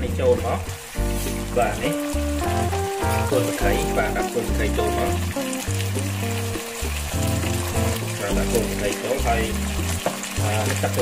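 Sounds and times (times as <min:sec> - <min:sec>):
held notes over bass line: 0:01.0 - 0:11.0.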